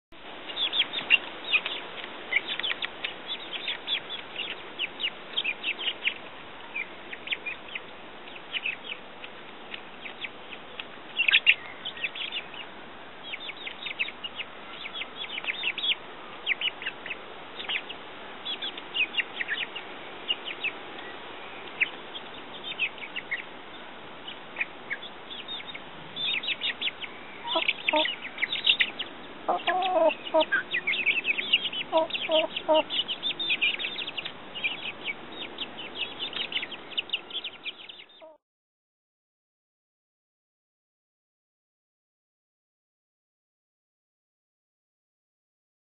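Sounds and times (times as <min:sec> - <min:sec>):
chicks peeping: 0:00.4 - 0:38.4.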